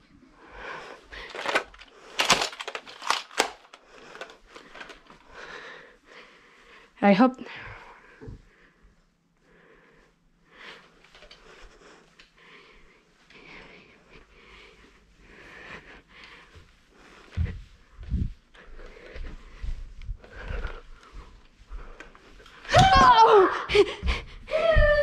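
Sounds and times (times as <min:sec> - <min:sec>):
person breathing hard: 0:00.4 - 0:22.7, 0:23.4 - 0:25.0
heavy footsteps thudding: 0:16.6 - 0:22.0.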